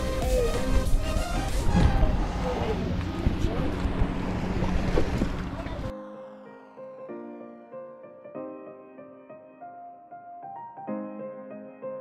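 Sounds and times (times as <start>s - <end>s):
wind buffeting microphone: 0.0s - 5.9s
sea waves washing: 0.5s - 5.9s.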